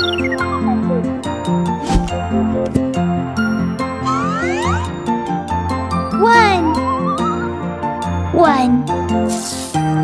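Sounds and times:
cartoon background music: 0.0s - 10.0s
cartoon pitch sweep effect: 4.0s - 4.9s.

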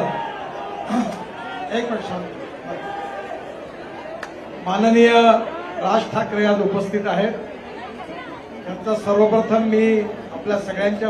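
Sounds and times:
man speaking over public address: 0.0s - 0.2s, 1.5s - 2.9s, 4.6s - 7.5s, 8.6s - 11.0s
crowd murmuring: 0.0s - 11.0s.

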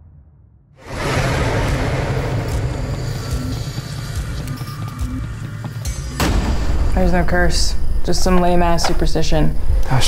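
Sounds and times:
faint musical drone: 2.1s - 10.0s.

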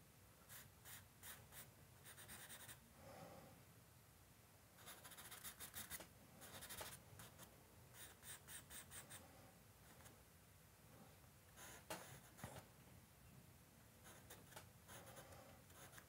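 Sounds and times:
charcoal scratching on paper: 4.8s - 9.1s.

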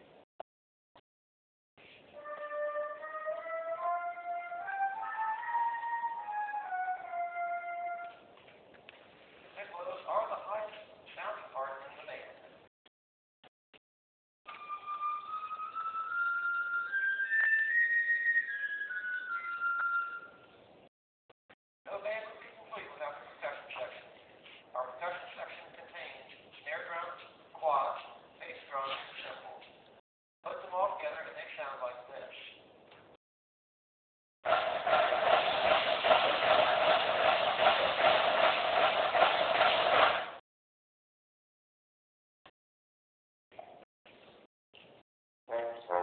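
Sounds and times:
high flutes playing slow melody: 2.2s - 8.2s, 14.5s - 20.5s.

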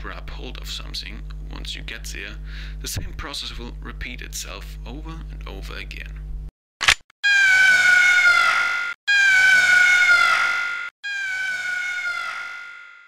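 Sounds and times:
cartoon falling scream: 7.2s - 13.0s.

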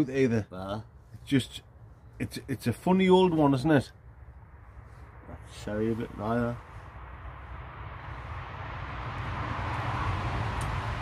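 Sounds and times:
distant engine noise: 0.0s - 11.0s
rushing sound: 6.6s - 11.0s.

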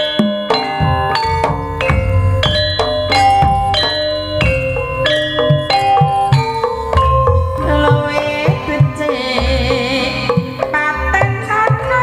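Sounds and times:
metal keyed instruments ringing: 0.0s - 9.8s
low drum pulse: 0.8s - 10.6s.

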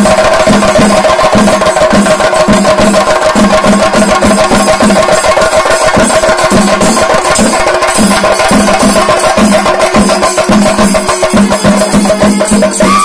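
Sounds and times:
drums beaten with sticks: 0.0s - 13.0s
hand cymbals ringing: 0.0s - 13.0s.

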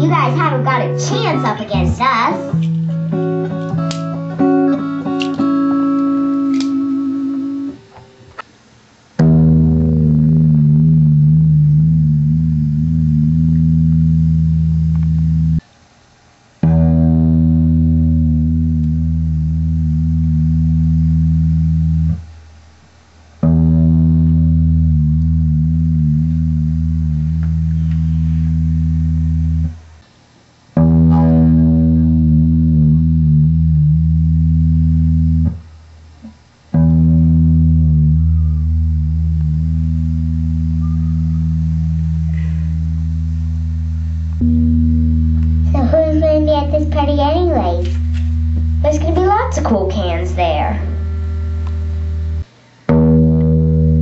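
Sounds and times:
distorted guitar chords: 0.0s - 8.5s, 9.2s - 15.7s, 16.6s - 54.0s.

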